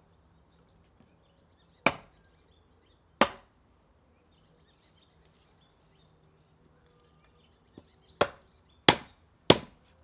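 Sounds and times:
wooden mallet knocking wood: 0:08.2 - 0:09.8.

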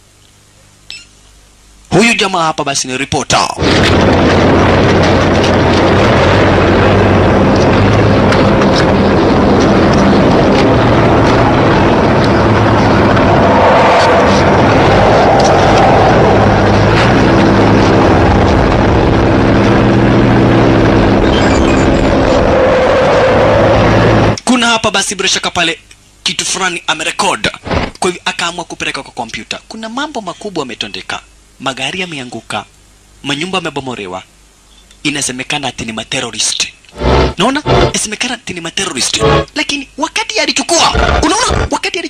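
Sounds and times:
low steady drone: 0:03.6 - 0:24.4, 0:36.9 - 0:38.0, 0:39.1 - 0:39.6
roaring rumble: 0:03.6 - 0:24.4, 0:36.9 - 0:38.0, 0:39.2 - 0:39.5.

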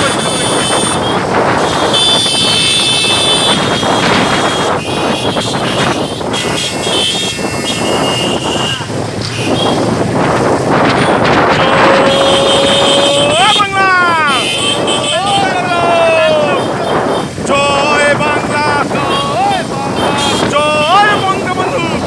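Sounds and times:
motorcycles running: 0:00.0 - 0:22.0
wind on microphone: 0:00.0 - 0:22.0
man shouting drawn-out calls: 0:11.6 - 0:22.0.

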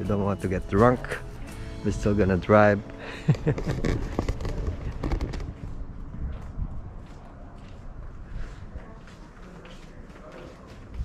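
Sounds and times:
wind buffeting microphone: 0:03.5 - 0:09.3.

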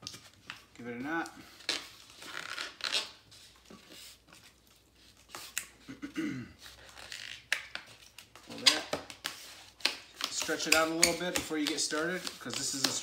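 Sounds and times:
rubber balloon squeaks: 0:01.6 - 0:03.3, 0:06.8 - 0:07.6.

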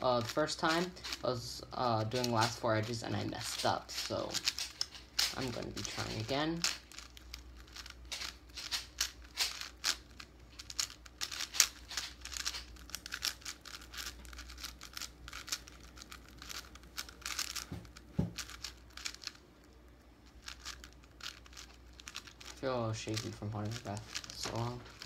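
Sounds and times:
puzzle cube plastic clicks: 0:00.1 - 0:25.0.

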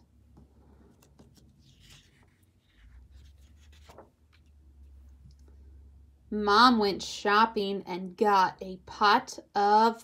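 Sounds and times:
paper page rustling: 0:00.8 - 0:05.0
soft page flap: 0:00.9 - 0:04.5.

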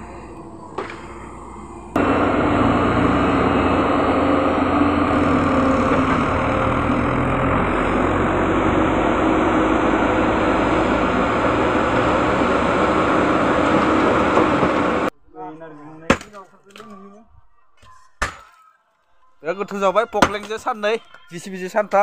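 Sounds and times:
excavator diesel engine running: 0:00.0 - 0:15.1
tractor engine running: 0:00.0 - 0:15.1.

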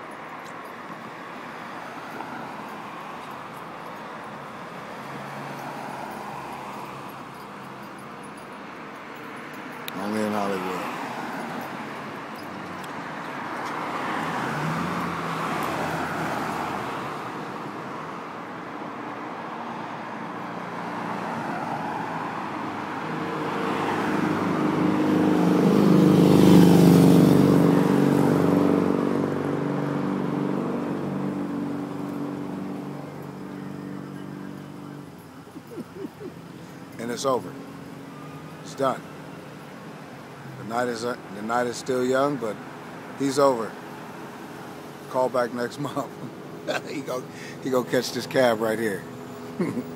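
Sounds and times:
cars passing: 0:00.0 - 0:49.9.

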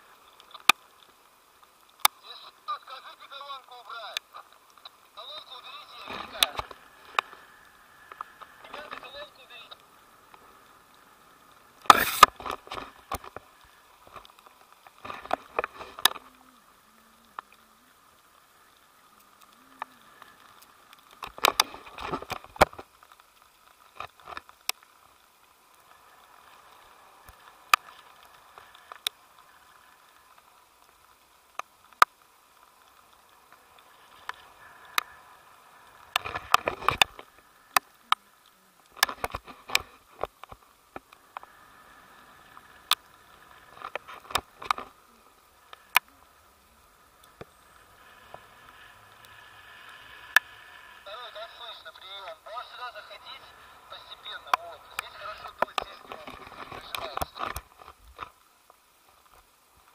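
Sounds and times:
muffled voices: 0:05.2 - 0:06.8, 0:08.6 - 0:09.8, 0:51.0 - 0:57.6.

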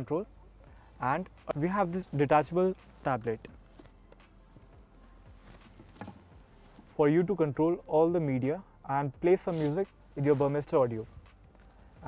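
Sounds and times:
faint handling sounds: 0:00.0 - 0:08.4, 0:09.2 - 0:12.0.

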